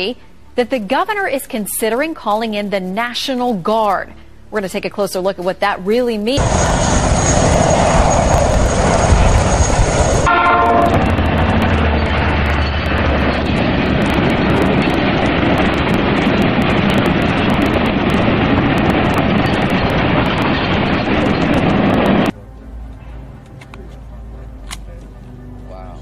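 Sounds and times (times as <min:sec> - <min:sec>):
helicopter whine: 0:00.0 - 0:26.0
freight train rumble: 0:06.3 - 0:26.0
train horn: 0:10.3 - 0:12.1.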